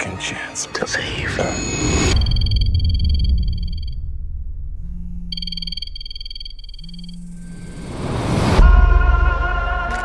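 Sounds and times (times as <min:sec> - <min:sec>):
deep rumble: 0:01.8 - 0:09.2
mobile phone ringtone: 0:05.2 - 0:07.6.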